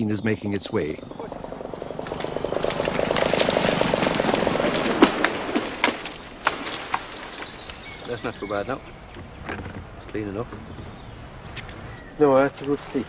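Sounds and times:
rush of branches and leaves: 0.8 - 13.0
tree cracking and snapping: 1.0 - 13.0.

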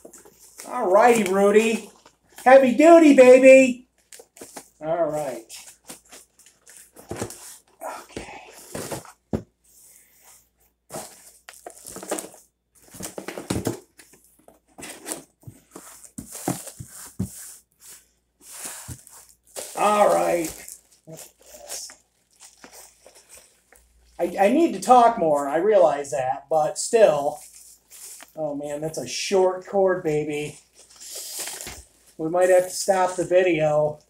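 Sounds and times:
cardboard box rustling: 5.6 - 9.5, 10.9 - 21.6
plastic bag crinkling: 10.9 - 13.2, 19.0 - 23.9.

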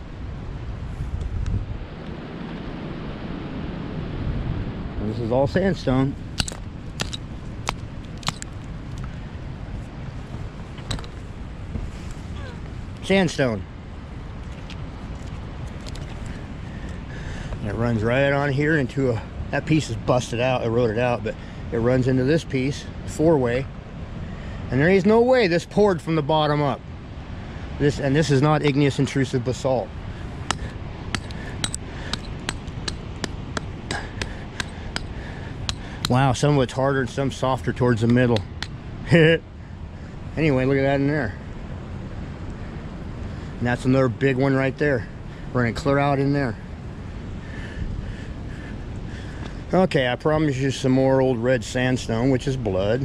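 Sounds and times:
wind rumble on microphone: 0.0 - 53.0
hammer striking rock: 6.4 - 8.5, 10.9 - 11.1, 30.4 - 36.2.

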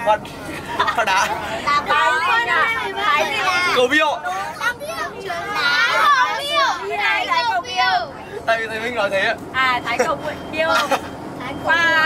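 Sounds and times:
bus engine drone: 0.0 - 12.0.

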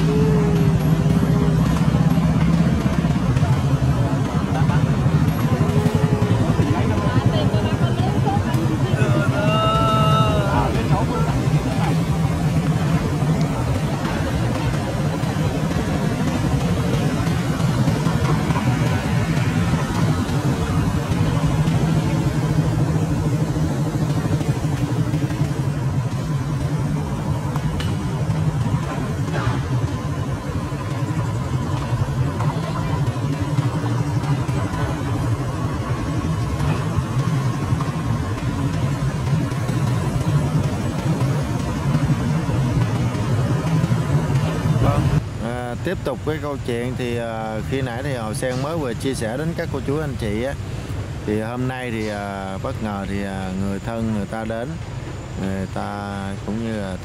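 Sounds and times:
motorbike and car traffic hum: 0.0 - 57.0.

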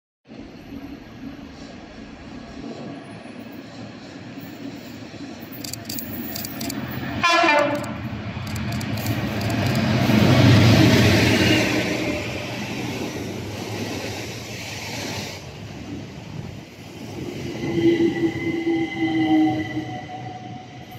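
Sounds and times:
diesel locomotive engine: 0.3 - 20.9
wheels on rails: 4.5 - 10.3
train horn blast: 7.2 - 8.0.

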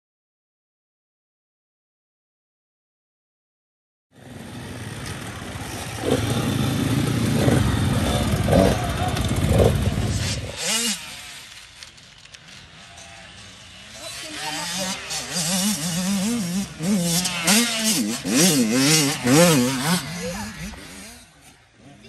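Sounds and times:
motocross bikes revving: 4.2 - 22.0.

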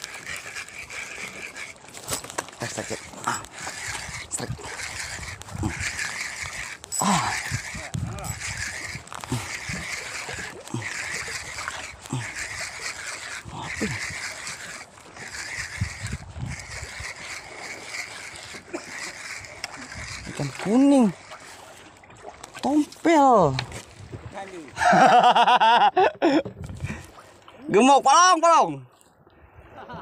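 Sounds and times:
fishing reel winding: 0.0 - 21.8.

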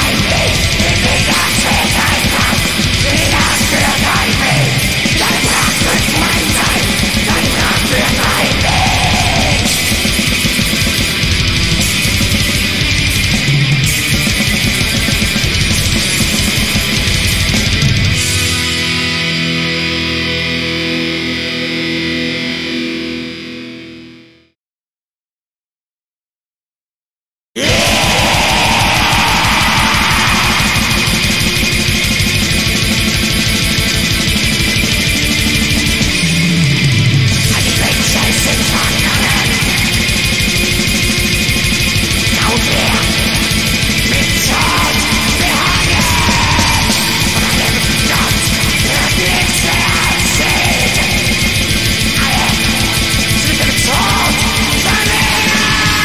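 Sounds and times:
harsh screamed vocal: 0.0 - 11.5, 27.6 - 34.1, 37.0 - 56.0
black metal music: 0.0 - 23.8, 27.6 - 56.0
distorted electric guitar chord ringing: 0.0 - 24.5, 27.6 - 56.0.

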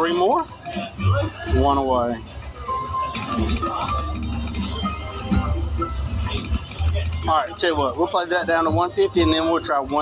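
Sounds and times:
slot machine electronic music: 0.0 - 10.0.

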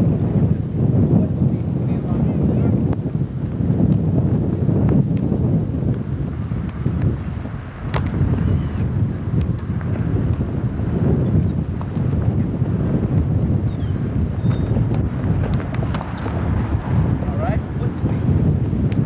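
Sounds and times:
wind buffeting microphone: 0.0 - 19.0
soccer ball kicked: 7.8 - 13.4, 14.4 - 17.1.

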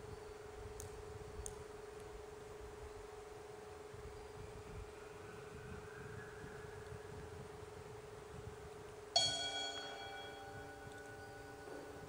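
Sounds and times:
faint steady hum: 0.0 - 12.0
small metal bell ringing: 9.2 - 12.0.

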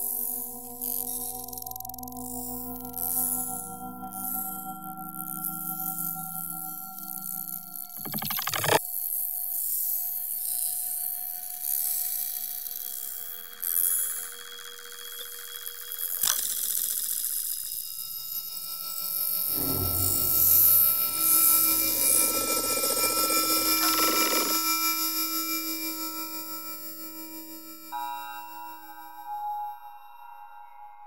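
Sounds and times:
sharp click: 8.0 - 8.8
dense cluster of low tones: 19.5 - 23.8.

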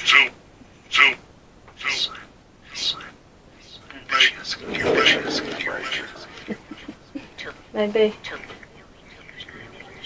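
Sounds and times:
person whispering: 7.2 - 10.0.

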